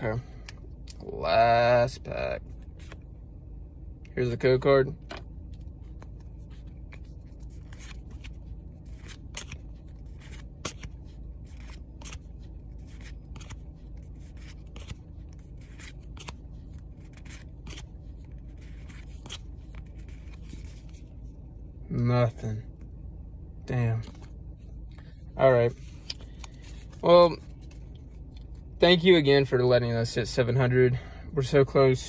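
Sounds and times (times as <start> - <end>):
steady low hum: 0.0 - 32.0
cards flipping: 5.1 - 21.1, 25.8 - 28.6.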